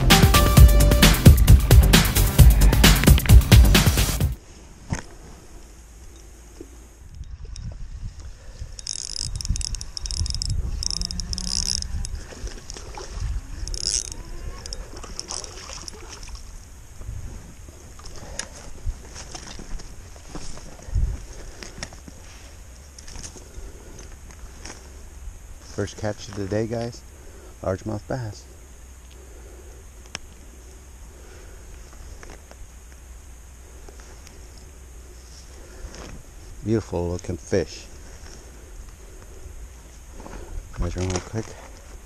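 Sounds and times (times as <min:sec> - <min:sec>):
spinning reel cranking: 0:08.7 - 0:12.2, 0:13.6 - 0:16.0
handling rustle: 0:17.0 - 0:25.0, 0:33.8 - 0:42.0.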